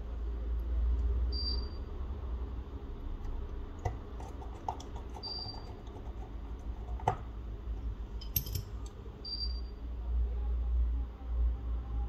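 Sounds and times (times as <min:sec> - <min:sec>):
low steady hum: 0:00.0 - 0:12.0
fingertips tapping small metal parts: 0:07.8 - 0:09.0.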